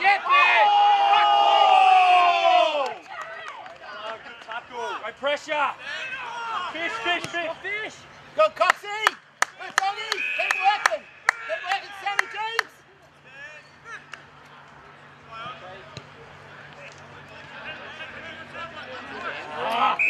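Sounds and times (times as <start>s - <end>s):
people shouting: 0.0s - 2.9s, 5.8s - 7.2s, 9.8s - 12.7s
sharp hand claps: 8.6s - 12.7s.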